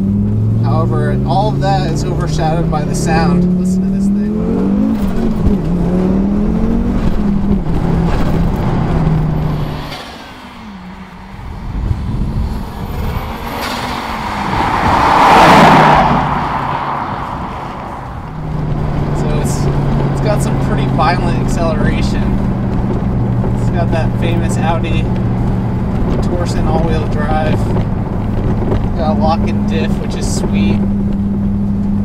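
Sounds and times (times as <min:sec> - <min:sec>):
turbocharged car engine revving: 0:00.0 - 0:32.0
car passing by: 0:02.6 - 0:22.4.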